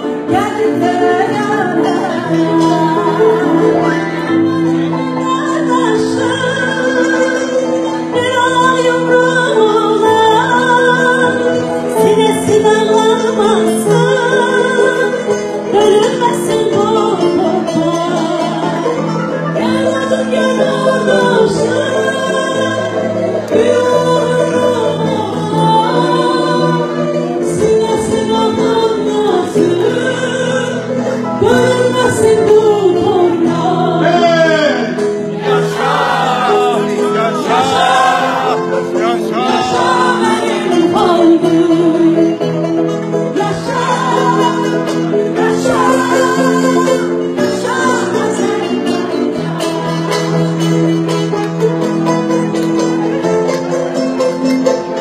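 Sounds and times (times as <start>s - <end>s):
group of voices singing: 0.0s - 42.4s, 43.2s - 51.4s
piano accompaniment: 0.0s - 55.0s
plucked string notes: 0.0s - 55.0s.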